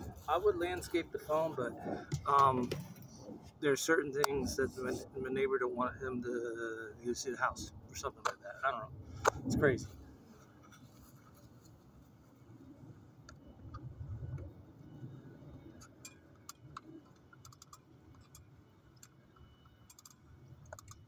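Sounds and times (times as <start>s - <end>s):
small clicks and ticks: 15.6s - 21.0s.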